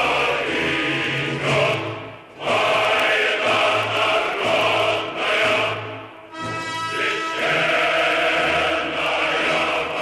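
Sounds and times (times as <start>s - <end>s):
choir singing: 0.0s - 10.0s.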